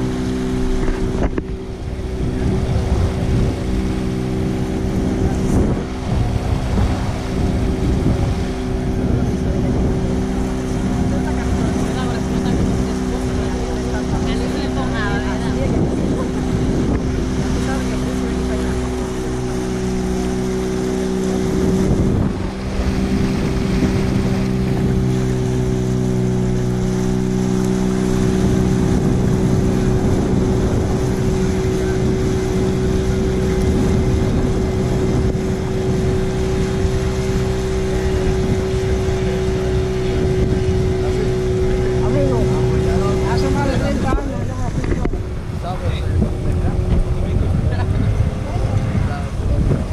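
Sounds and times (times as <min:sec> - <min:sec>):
outboard motor running: 0:00.0 - 0:49.9
rushing water: 0:00.0 - 0:49.9
wind noise: 0:00.0 - 0:49.9.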